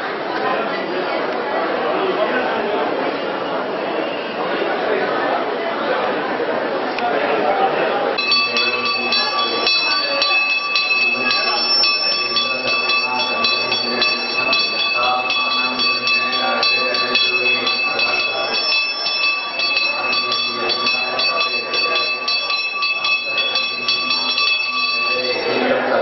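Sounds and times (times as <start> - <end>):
hand bell ringing rapidly: 8.2 - 25.6.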